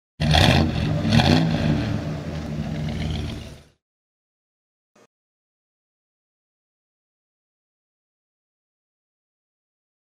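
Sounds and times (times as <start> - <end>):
car engine revving: 0.2 - 3.8.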